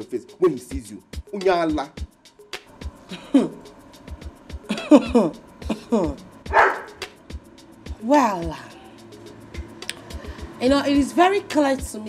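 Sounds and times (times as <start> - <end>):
background music with low beat: 0.0 - 12.0
woman laughing mockingly: 3.1 - 3.6, 4.7 - 6.2.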